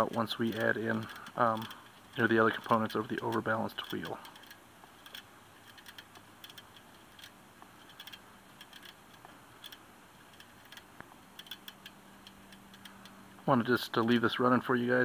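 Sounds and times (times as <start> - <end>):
bicycle wheel bearing ticks: 0.0 - 13.2.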